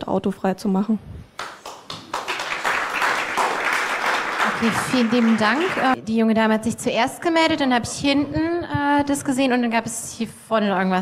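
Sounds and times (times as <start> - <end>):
audience applause: 1.4 - 6.0.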